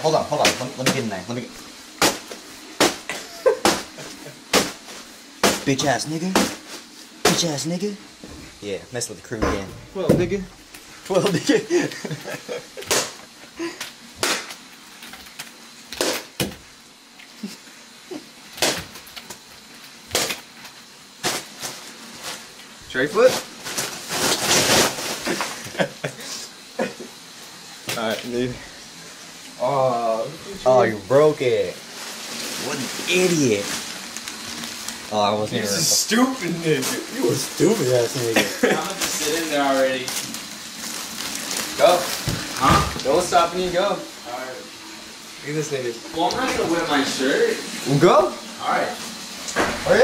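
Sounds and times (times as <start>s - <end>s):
shoe stomping on bag of ice: 2.0s - 7.5s, 41.7s - 43.2s
ice crunching in plastic bag: 21.2s - 25.6s, 31.6s - 43.9s.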